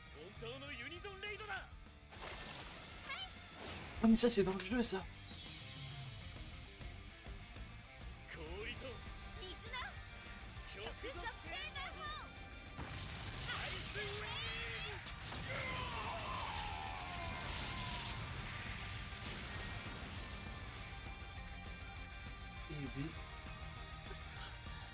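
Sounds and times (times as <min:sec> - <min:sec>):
dramatic music: 0:02.0 - 0:24.9
people shouting: 0:08.4 - 0:19.8
loud crashing sound effects: 0:15.0 - 0:21.4.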